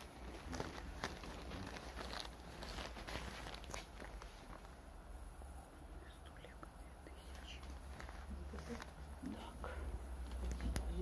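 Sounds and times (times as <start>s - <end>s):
low steady hum: 0.0s - 11.0s
faint whispering voice: 5.7s - 10.0s.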